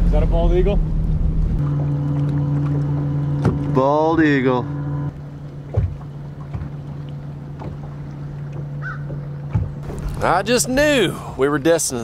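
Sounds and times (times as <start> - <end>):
boat motor humming: 0.0 - 12.0
soft thumps: 8.6 - 10.2.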